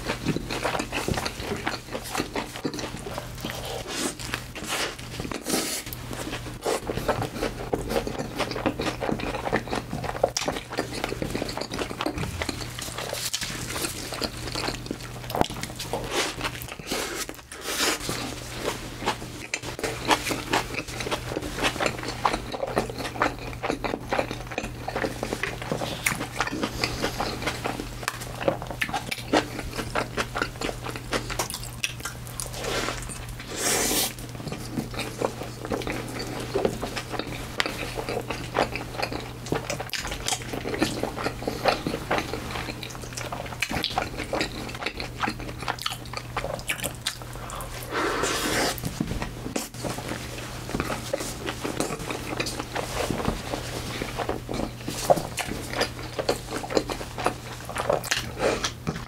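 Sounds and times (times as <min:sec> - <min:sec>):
steady low hum: 0:00.0 - 0:59.0
wet chewing and crunching: 0:00.0 - 0:59.0.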